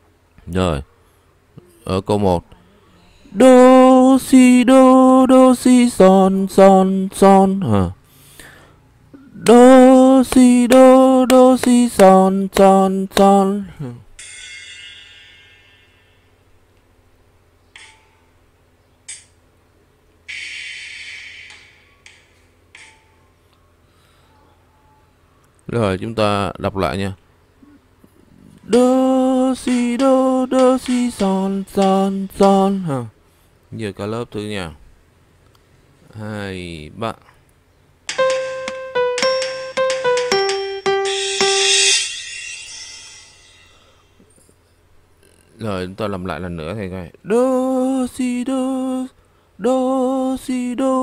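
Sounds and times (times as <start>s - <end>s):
faint steady hum: 0.0s - 14.3s, 21.5s - 51.0s
breathing close to a microphone: 8.0s - 8.9s, 23.8s - 24.5s
piano notes on keyboard: 38.1s - 42.1s.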